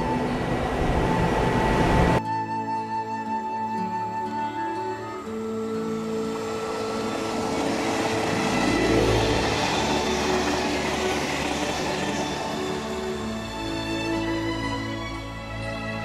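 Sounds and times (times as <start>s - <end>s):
background music: 0.0s - 16.0s
train wheels rumbling on rails: 5.9s - 15.2s.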